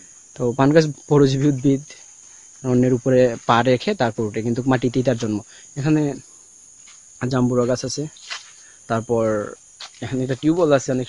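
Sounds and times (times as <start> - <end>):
high-pitched insect drone: 0.0 - 11.0
man speaking: 0.4 - 2.0, 2.6 - 6.2, 7.2 - 8.2, 8.9 - 11.0.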